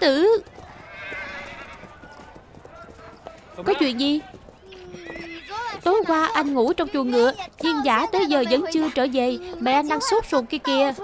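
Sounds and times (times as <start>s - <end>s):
faint hoof steps: 0.0s - 10.6s
horse whinnying: 0.6s - 2.4s.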